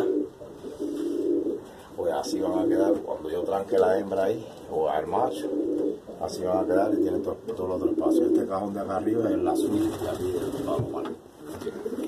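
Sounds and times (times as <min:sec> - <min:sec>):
pigeon cooing: 0:00.0 - 0:04.0, 0:04.9 - 0:12.0.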